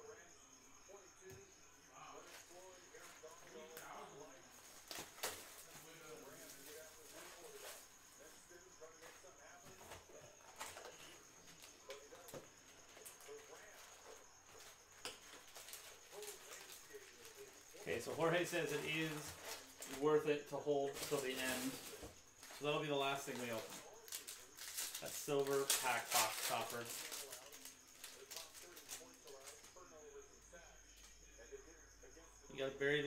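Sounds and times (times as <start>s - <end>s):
trading cards being handled: 20.9s - 29.5s.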